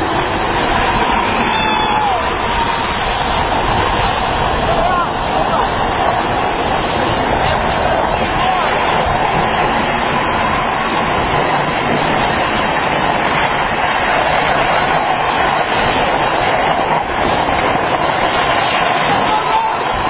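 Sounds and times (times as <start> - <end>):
wheels rolling on asphalt: 0.0 - 20.0
wind on microphone: 0.0 - 20.0.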